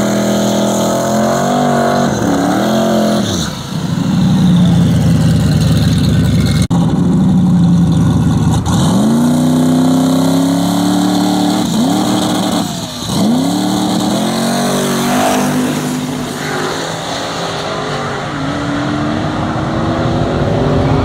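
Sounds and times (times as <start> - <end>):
drag car engines accelerating: 0.0 - 21.0.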